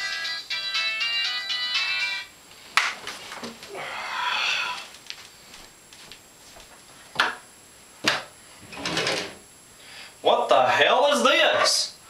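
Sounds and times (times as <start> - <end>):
electronic ringtone melody: 0.0 - 2.3.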